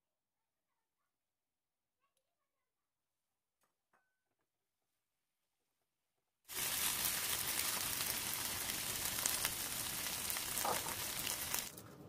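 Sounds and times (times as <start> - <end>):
food sizzling in a pan: 6.5 - 11.7.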